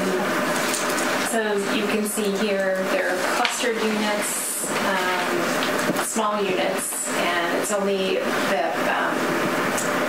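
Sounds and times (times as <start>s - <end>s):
woman talking into a microphone: 1.2s - 9.3s.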